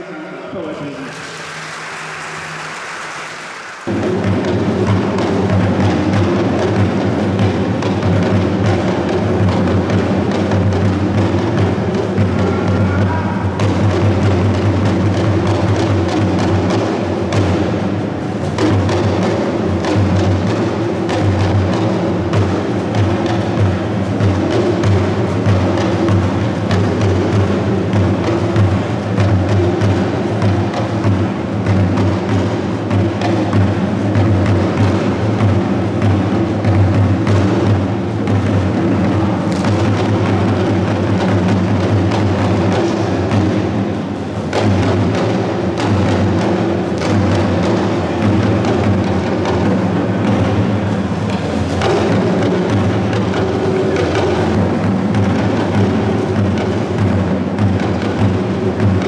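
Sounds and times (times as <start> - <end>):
talking drums playing: 0.0 - 59.0
large drum beating: 3.8 - 59.0.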